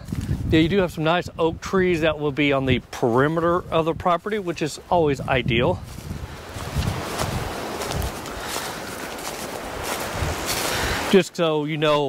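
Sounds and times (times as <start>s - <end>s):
wind buffeting microphone: 0.0s - 11.2s
footsteps through dry leaves: 5.8s - 11.2s.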